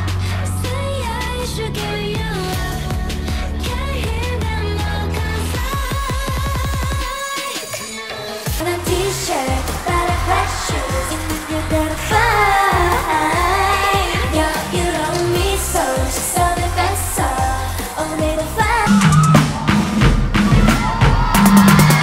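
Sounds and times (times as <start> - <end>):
woman singing: 0.0 - 19.2
pop dance track: 0.0 - 22.0.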